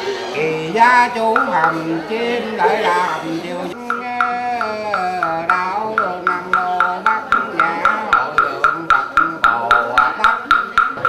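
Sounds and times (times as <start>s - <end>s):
man chanting: 0.4s - 11.0s
wooden fish knocks: 5.2s - 11.0s.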